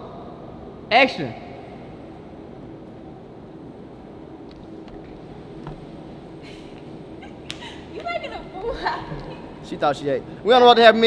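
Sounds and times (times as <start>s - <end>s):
parking garage hum: 0.0s - 11.0s.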